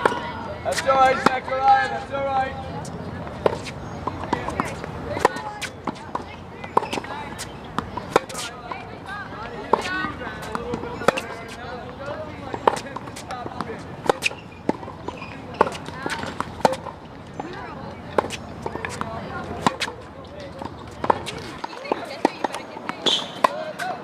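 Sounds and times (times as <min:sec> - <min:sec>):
faint distant tennis hits: 0:00.0 - 0:24.0
tennis balls bouncing on court: 0:00.0 - 0:24.0
tennis racquets hitting balls: 0:00.0 - 0:24.0.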